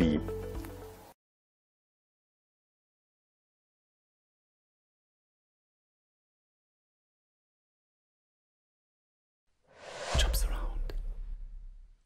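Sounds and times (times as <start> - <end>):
breathy whoosh: 9.7 - 12.0
bright swishes: 9.8 - 12.0
deep bass hit: 9.9 - 12.0.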